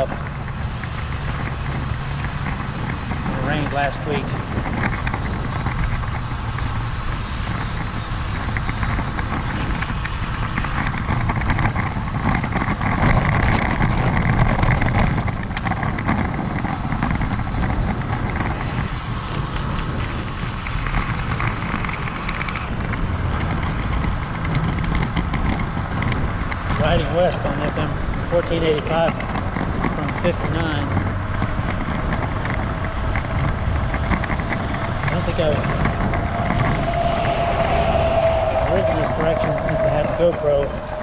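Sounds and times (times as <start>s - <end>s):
tyre and road noise: 0.0s - 41.0s
wind rumble on microphone: 0.0s - 41.0s.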